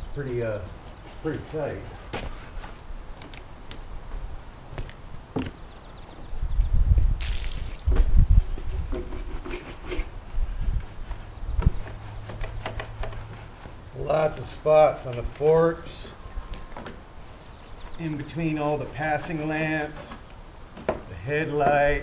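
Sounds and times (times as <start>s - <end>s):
brush scrubbing and knocking: 8.5s - 10.1s.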